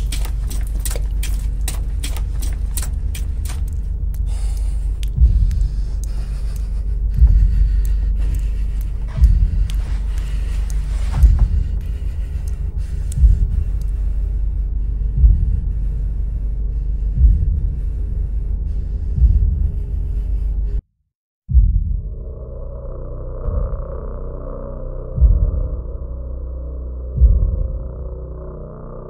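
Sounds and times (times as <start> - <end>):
heavy low thuds: 0.0 - 16.3, 17.0 - 18.0, 19.1 - 20.0, 21.5 - 22.2, 25.2 - 26.1, 27.1 - 28.2
deep rumbling drone: 0.0 - 20.8, 21.5 - 29.0.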